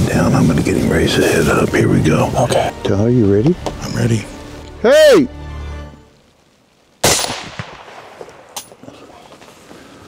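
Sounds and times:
rifle shot with echo: 7.0 - 8.8.

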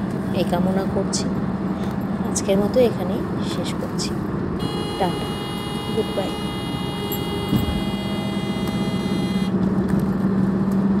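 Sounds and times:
car road and engine noise: 0.0 - 11.0
car bump: 7.4 - 7.9.

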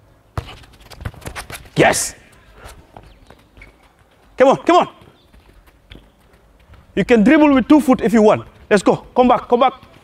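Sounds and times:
footsteps and football on turf: 0.3 - 10.0.

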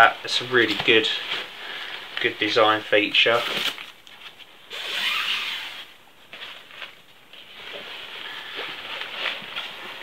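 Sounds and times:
nylon fabric rustling: 0.0 - 10.0.

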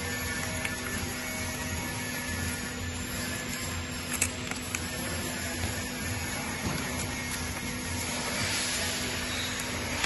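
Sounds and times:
machine mechanical hum: 0.0 - 10.0.

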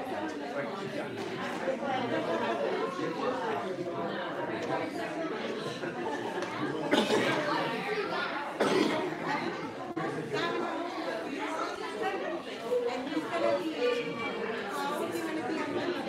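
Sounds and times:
many people talking: 0.0 - 16.0.

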